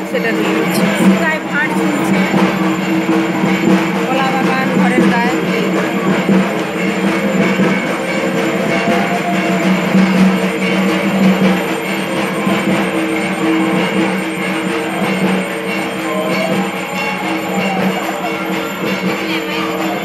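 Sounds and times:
music with drums and percussion: 0.0 - 20.0.

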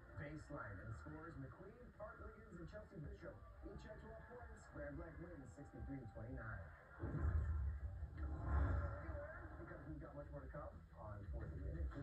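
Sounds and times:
muffled voices: 0.0 - 12.0
low rumble: 7.0 - 9.7.

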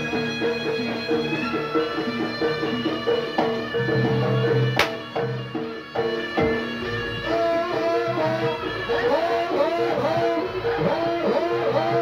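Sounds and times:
melody of held notes: 0.0 - 12.0
percussion: 0.0 - 12.0.

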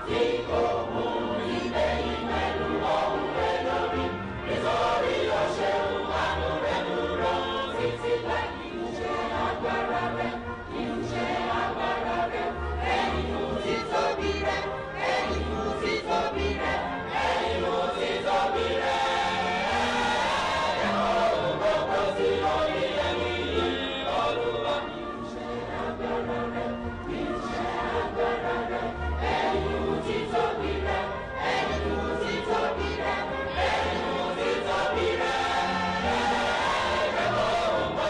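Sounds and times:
choir singing: 0.0 - 38.0.

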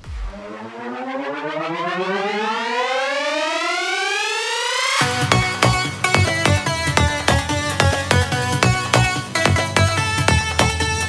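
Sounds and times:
synthesizer riser tone: 0.0 - 8.5.

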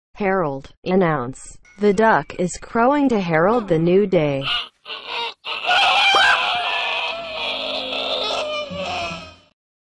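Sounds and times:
duck crowing: 4.4 - 9.5.

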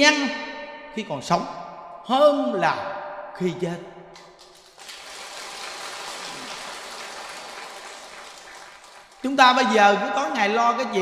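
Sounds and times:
audience applause: 4.4 - 9.3.

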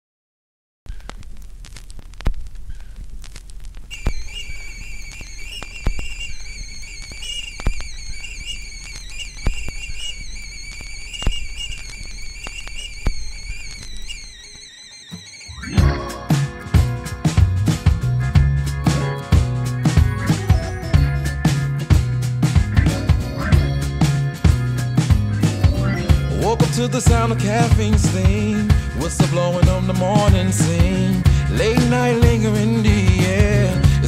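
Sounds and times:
faint crackling and clicks: 0.9 - 15.3
high wavering whistle-like tone: 3.9 - 16.5
band playing: 15.3 - 34.0.

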